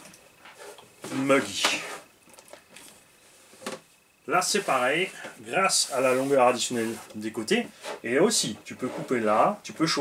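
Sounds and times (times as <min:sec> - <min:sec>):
soft rustle: 0:00.3 - 0:09.4.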